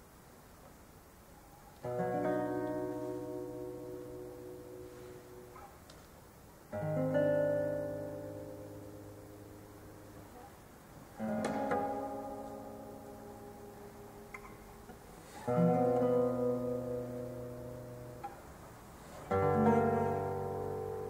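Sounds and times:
classical guitar chords: 0:01.8 - 0:21.0.

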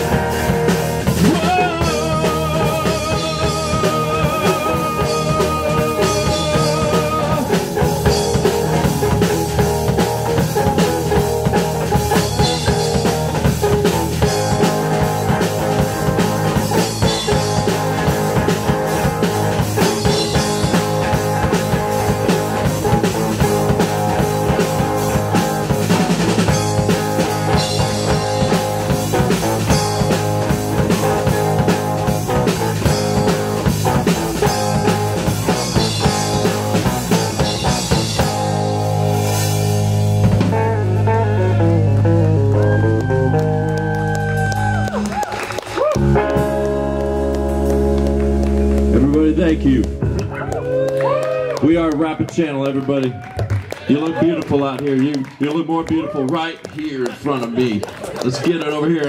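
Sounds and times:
rock band playing: 0:00.0 - 0:59.0.

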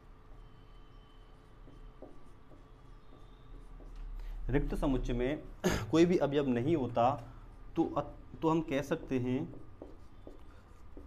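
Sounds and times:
marker pen writing on whiteboard: 0:00.0 - 0:11.0.

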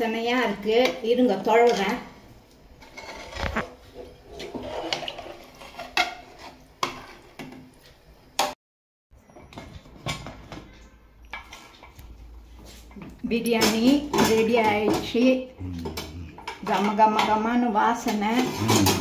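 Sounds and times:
metal ladle scraping pressure cooker: 0:02.8 - 0:07.2, 0:18.1 - 0:19.0.

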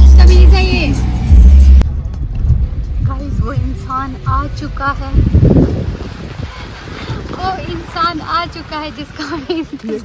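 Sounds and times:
bass-heavy music: 0:00.0 - 0:06.0.

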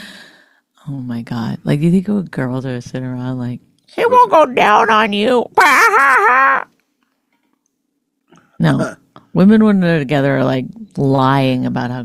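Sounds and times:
woman laughing: 0:04.0 - 0:06.7.

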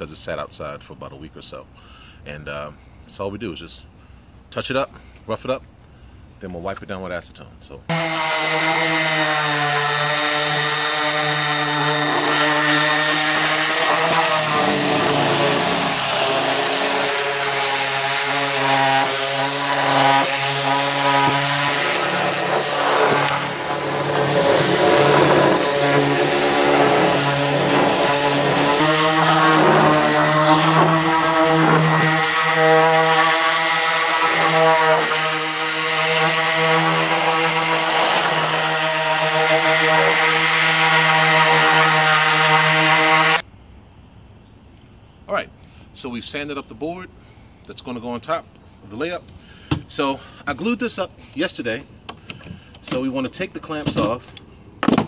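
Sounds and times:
orbital sander sanding wood: 0:07.9 - 0:43.4.

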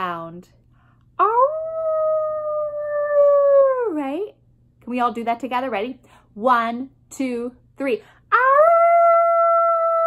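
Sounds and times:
woman imitating howl: 0:01.2 - 0:04.2, 0:08.3 - 0:10.0.

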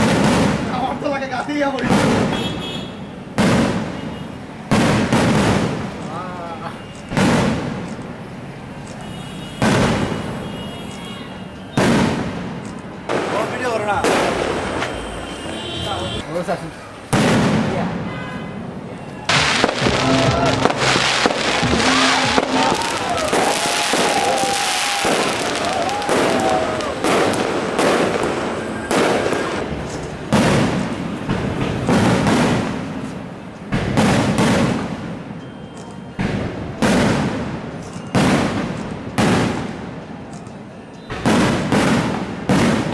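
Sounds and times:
firework shells bursting: 0:19.3 - 0:35.3.

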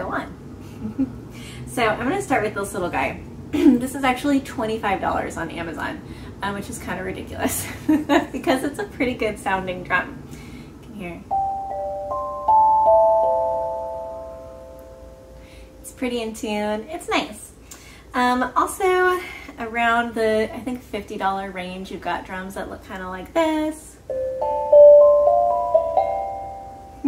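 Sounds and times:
steel tongue drum ringing: 0:11.3 - 0:15.6, 0:24.1 - 0:27.0.

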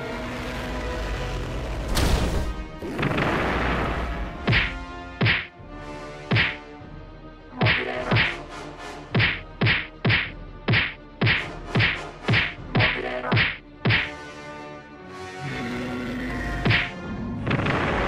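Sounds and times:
quiet background music: 0:00.0 - 0:18.0
sharp fight whacks: 0:04.4 - 0:05.5, 0:06.3 - 0:06.6, 0:09.1 - 0:14.2, 0:16.6 - 0:16.9.

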